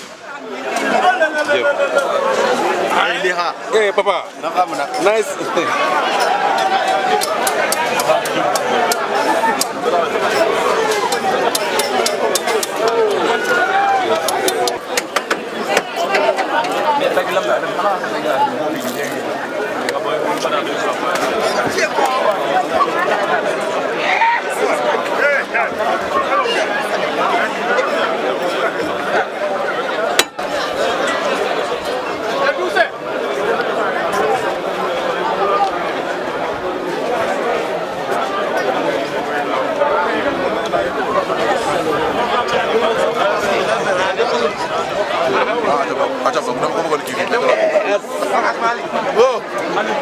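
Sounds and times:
crowd of voices talking: 0.0s - 50.0s.

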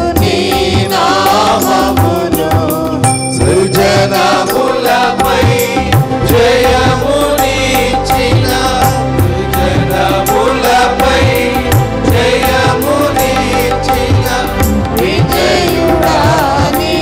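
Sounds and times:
group singing a hymn: 0.0s - 17.0s
keyboard accompaniment: 0.0s - 17.0s
regular drum beat: 0.0s - 17.0s.

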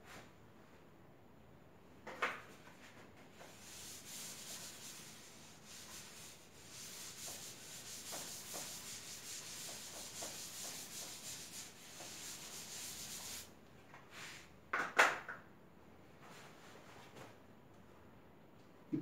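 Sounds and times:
eraser scrubbing chalkboard: 3.4s - 13.5s.

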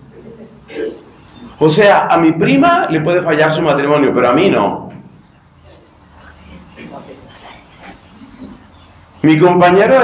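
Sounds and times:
speech: 9.2s - 10.0s.

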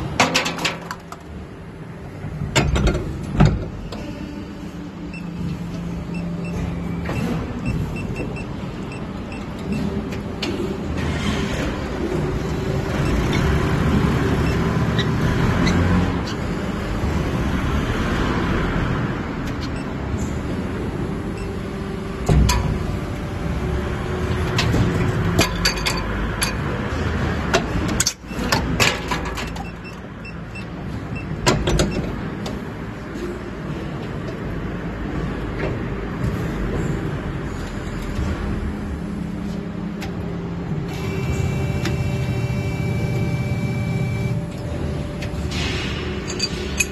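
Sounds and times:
injection molding machine humming: 20.0s - 25.6s, 38.2s - 46.9s.

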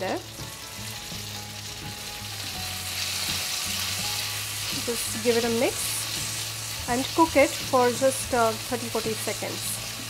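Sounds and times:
tomatoes sizzling in hot oil: 0.0s - 10.0s.

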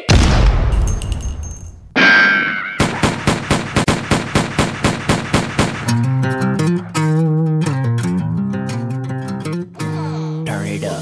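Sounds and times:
loud boom: 0.0s - 1.0s
music: 5.8s - 11.0s.

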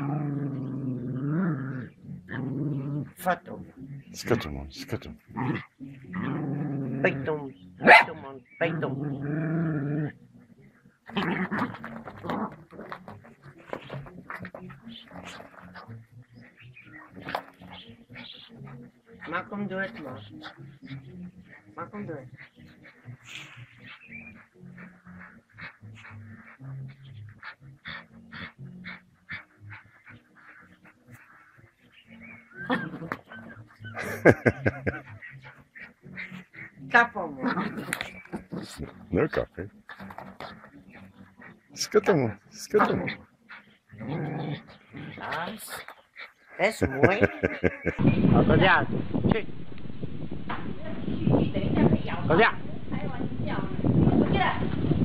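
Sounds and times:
small dog barking and growling: 5.3s - 10.2s, 11.1s - 12.9s, 37.3s - 39.0s, 42.8s - 45.8s
people's voices: 46.6s - 49.4s.

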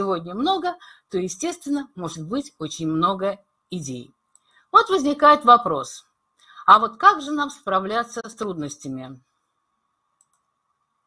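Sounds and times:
woman's voice: 0.0s - 9.3s
faint steady hum: 0.0s - 11.0s
faint clicks: 10.2s - 10.6s.

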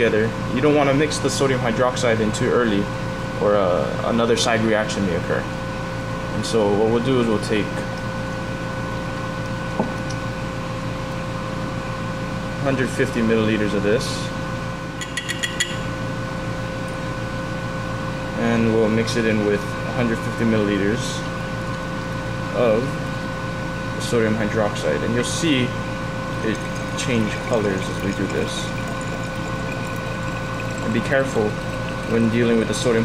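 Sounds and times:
steady mechanical hum: 0.0s - 33.0s
liquid pouring into glass flask: 24.9s - 33.0s.

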